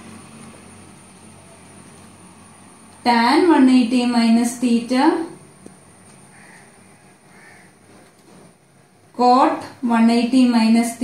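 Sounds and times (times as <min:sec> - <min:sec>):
faint rough bird calls: 0:06.0 - 0:09.0.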